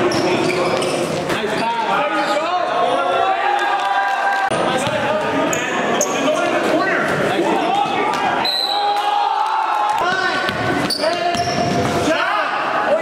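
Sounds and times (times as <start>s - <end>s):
sneakers squeaking: 0.0s - 2.5s, 4.8s - 6.4s, 10.1s - 12.1s
voices in a gym: 0.0s - 13.0s.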